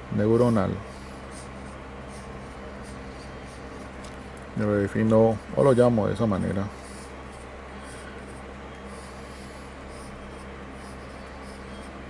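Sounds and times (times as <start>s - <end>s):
steady low hum: 0.0s - 12.0s
pen scratching on paper: 0.4s - 4.0s, 6.7s - 12.0s.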